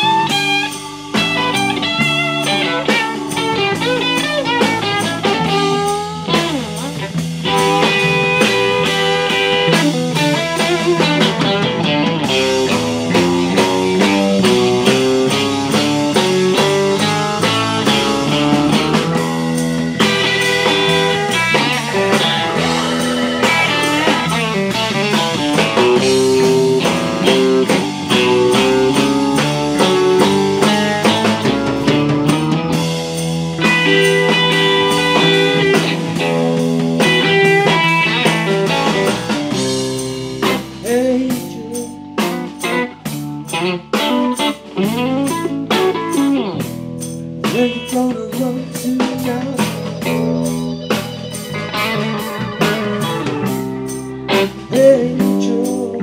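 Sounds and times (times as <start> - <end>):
bass drums and keyboards: 0.0 - 56.0
lead electric guitar: 0.0 - 56.0
person singing: 40.4 - 42.8, 47.4 - 56.0.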